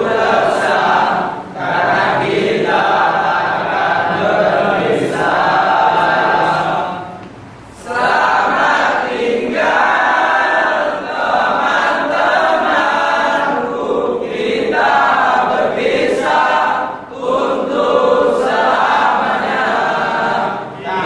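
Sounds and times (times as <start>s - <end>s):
young men singing together: 0.0s - 21.0s.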